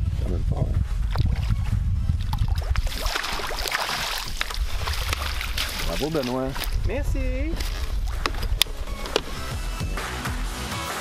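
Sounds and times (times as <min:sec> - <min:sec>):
fish splashing at water surface: 0:02.3 - 0:06.8.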